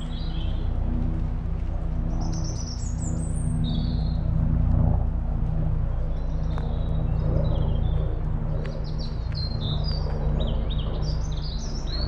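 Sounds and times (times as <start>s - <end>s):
songbirds singing: 0.0s - 4.8s, 5.5s - 12.0s
steady low rumble and hum: 0.0s - 12.0s.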